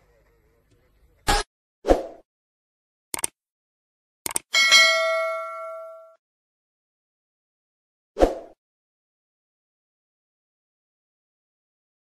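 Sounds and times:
sharp mouse clicks: 3.1s - 3.4s, 4.2s - 4.5s
notification ding: 4.6s - 6.2s.

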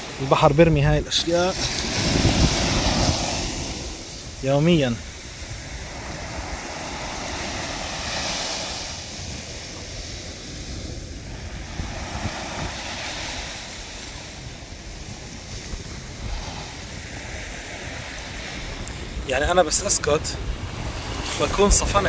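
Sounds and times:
small waves washing on sand: 0.0s - 22.0s
wind rumbling on microphone: 0.0s - 22.0s.

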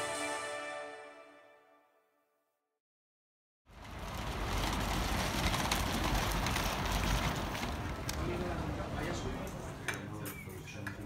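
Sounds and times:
traffic rumble: 3.7s - 11.0s
wind: 3.7s - 11.0s.

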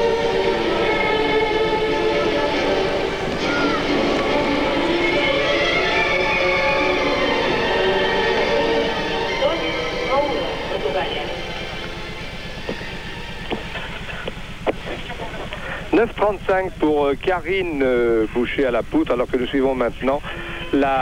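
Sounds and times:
music playing: 0.0s - 16.4s
crowd noise: 0.0s - 21.0s.

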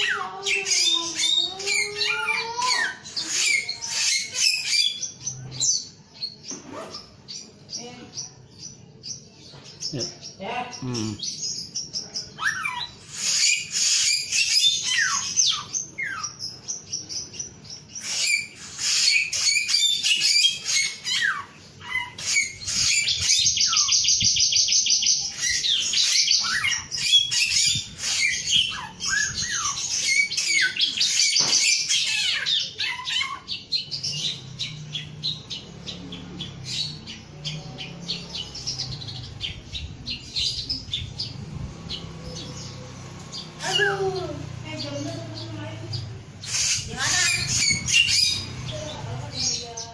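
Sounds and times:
bird singing chirps and whistles: 12.4s - 44.2s, 45.3s - 49.0s.

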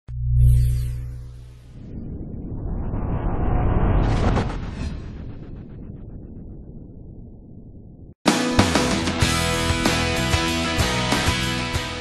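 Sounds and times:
rumbling whoosh: 0.2s - 8.2s.

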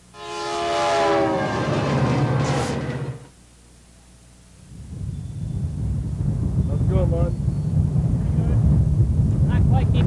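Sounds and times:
locomotive horn chord: 0.0s - 3.3s
passing train rumble: 0.0s - 3.3s.

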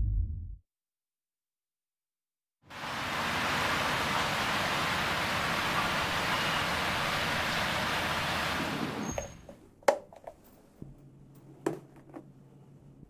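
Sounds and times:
distant city traffic: 2.7s - 9.6s.

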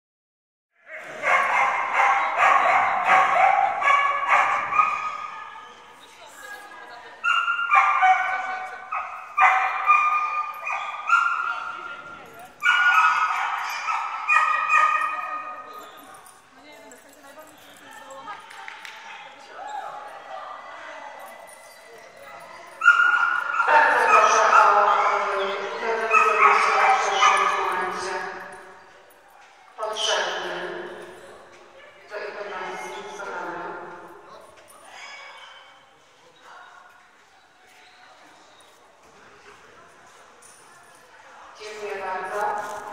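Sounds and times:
dog barking in a hall: 0.8s - 6.0s, 7.0s - 16.6s, 17.4s - 38.8s
people's voices: 0.8s - 42.9s.

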